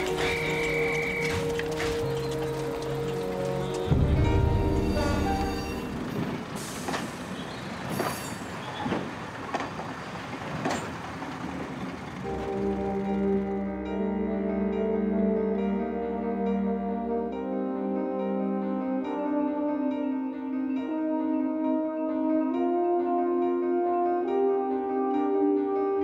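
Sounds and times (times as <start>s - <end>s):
clanks and knocks: 0.0s - 4.9s
background music: 0.0s - 6.8s, 12.2s - 26.0s
train moving along track: 0.0s - 15.8s
loud low train rumble: 0.0s - 17.5s.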